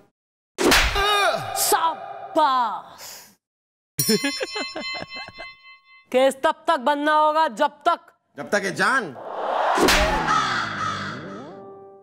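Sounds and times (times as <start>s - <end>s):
falling and rising tone: 9.2s - 10.6s
sharp hit with crash: 9.4s - 10.5s.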